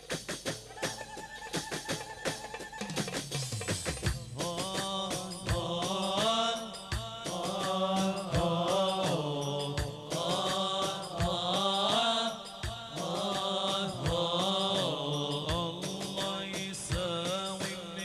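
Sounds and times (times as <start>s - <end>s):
drum strokes: 0.0s - 18.0s
chanted singing: 4.2s - 18.0s.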